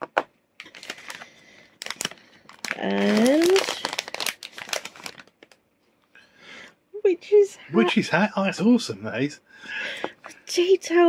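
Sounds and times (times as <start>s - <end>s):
plastic bag crinkling: 0.6s - 5.6s.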